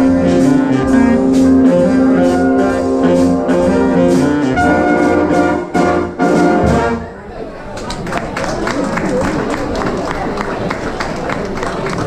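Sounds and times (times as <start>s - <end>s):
big band playing swing: 0.0s - 7.2s
room chatter: 0.0s - 12.0s.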